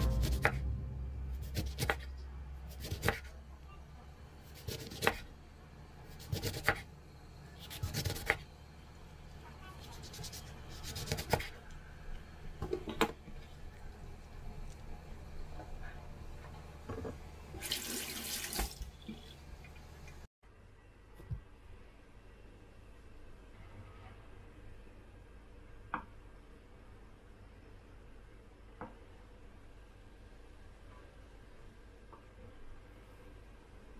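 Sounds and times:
water pouring: 17.6 - 20.0.

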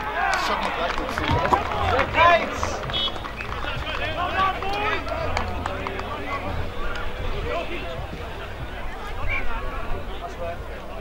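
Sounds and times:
distant people shouting: 0.0 - 11.0.

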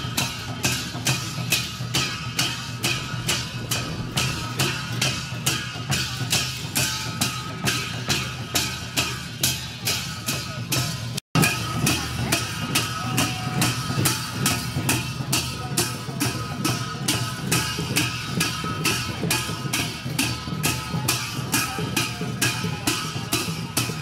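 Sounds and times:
drum beating: 0.0 - 24.0
hand cymbals clashing: 0.0 - 24.0.

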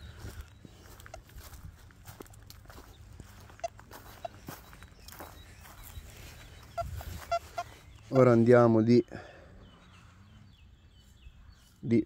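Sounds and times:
footsteps on grass: 0.0 - 8.6
metal detector beeps: 3.2 - 8.3.

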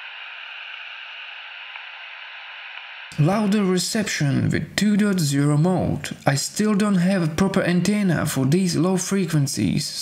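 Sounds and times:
radio static hiss: 0.0 - 5.2.

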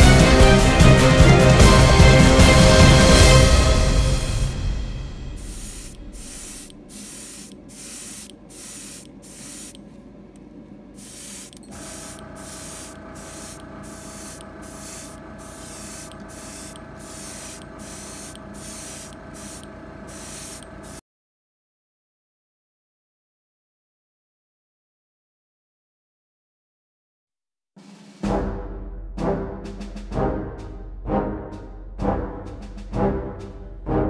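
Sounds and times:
steady hum: 4.2 - 21.0
airbrush spraying hiss: 5.3 - 9.8, 11.0 - 21.0.

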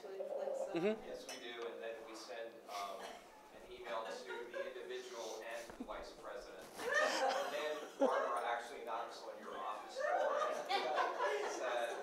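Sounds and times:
indistinct talking: 0.0 - 1.4.

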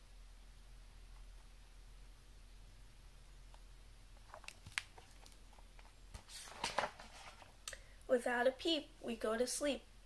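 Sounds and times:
paper rustle: 4.2 - 7.6.

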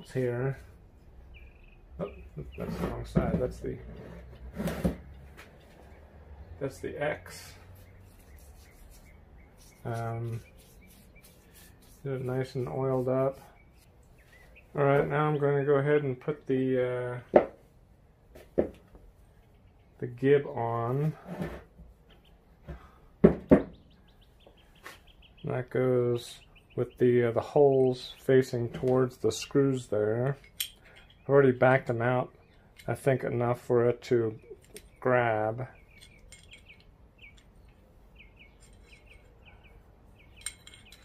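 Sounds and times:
bird chirping: 0.0 - 17.3, 19.2 - 20.5, 22.0 - 41.0
small bird chirping rapidly: 0.9 - 2.6, 7.6 - 12.7, 13.3 - 14.8, 23.7 - 25.5, 26.4 - 27.0, 35.8 - 41.0.

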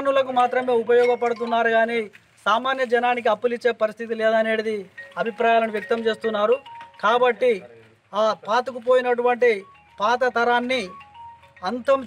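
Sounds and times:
man speaking: 0.0 - 11.0, 11.6 - 12.0.

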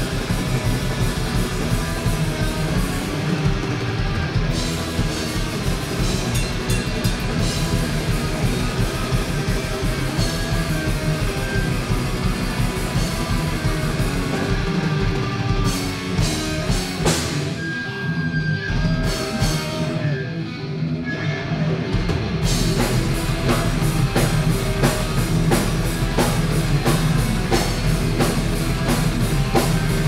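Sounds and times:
drum kit: 0.0 - 20.2, 21.7 - 30.0
bass guitar: 0.0 - 30.0
distorted electric guitars: 0.0 - 30.0.

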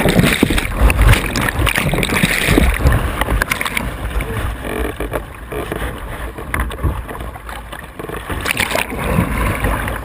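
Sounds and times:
wind buffeting microphone: 0.0 - 4.7
whitewater rushing and splashing: 0.0 - 10.0.

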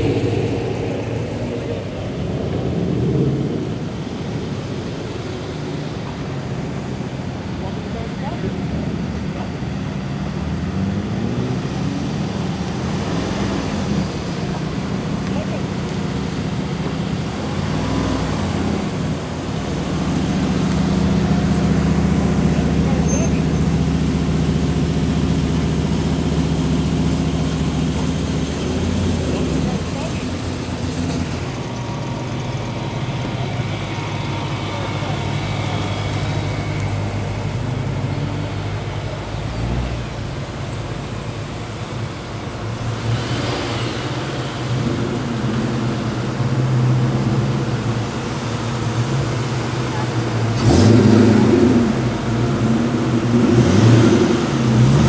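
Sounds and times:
cars driving slowly past: 0.0 - 55.0.

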